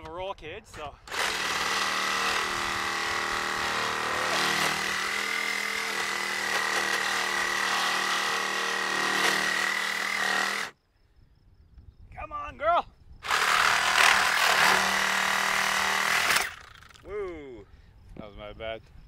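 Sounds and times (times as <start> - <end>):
reciprocating saw cutting steel: 1.1 - 10.7, 13.3 - 16.9.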